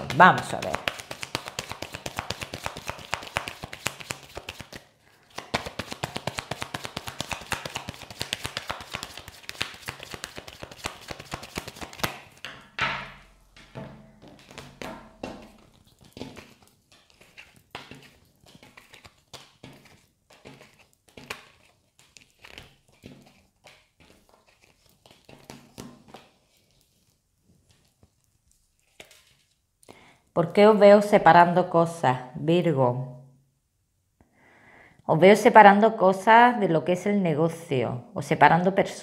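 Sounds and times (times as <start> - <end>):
cards tapping onto table: 5.4 - 21.6.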